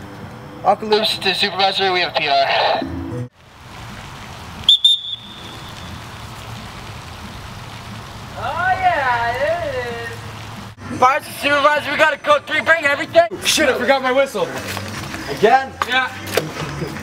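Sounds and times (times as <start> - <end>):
steady hiss: 3.4 - 10.8
whistle blast: 4.6 - 6.2.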